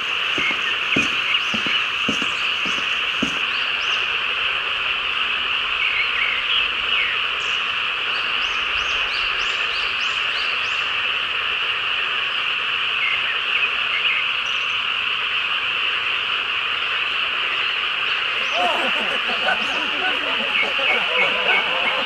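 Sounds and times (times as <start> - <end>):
soft footsteps: 0.0 - 3.5
frogs and insects chorus: 0.0 - 22.0.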